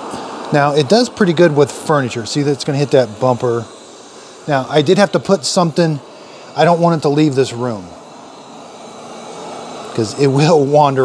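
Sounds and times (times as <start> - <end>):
robot vacuum whirring: 0.3 - 11.0.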